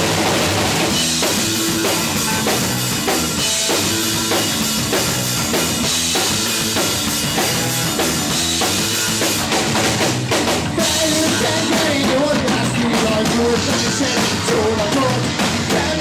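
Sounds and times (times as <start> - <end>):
rock band playing loud: 0.0 - 16.0.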